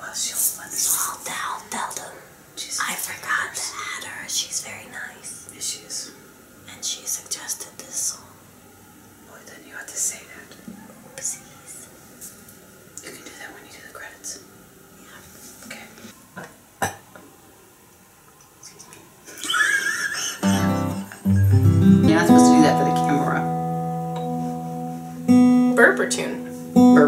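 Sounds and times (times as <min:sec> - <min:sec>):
faint room sounds: 0:00.0 - 0:27.0
acoustic guitar strummed: 0:20.4 - 0:27.0.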